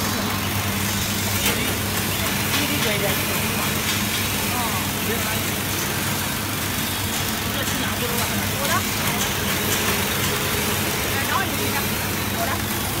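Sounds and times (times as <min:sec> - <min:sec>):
blades churning vegetables: 0:00.0 - 0:13.0.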